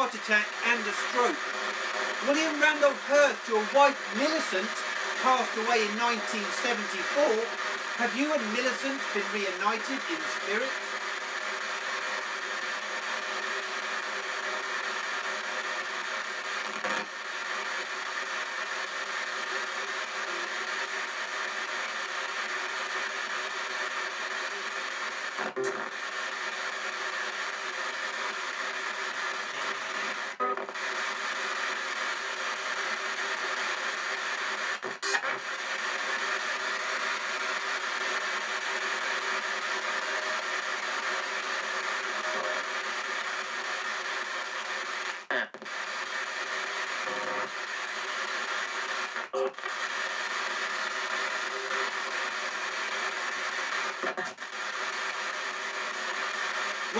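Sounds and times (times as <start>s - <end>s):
radio static with station fragments: 0.0s - 56.9s.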